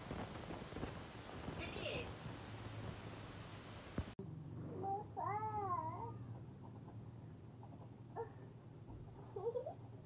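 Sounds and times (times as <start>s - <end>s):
background hiss: 0.0s - 4.2s
toddler meow-like vocal sound: 4.8s - 6.2s.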